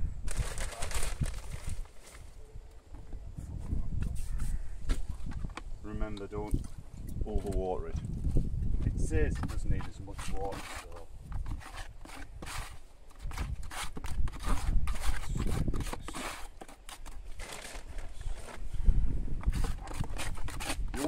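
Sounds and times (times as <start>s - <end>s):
spatula scraping mortar in bucket: 8.8s - 18.7s, 19.4s - 21.0s.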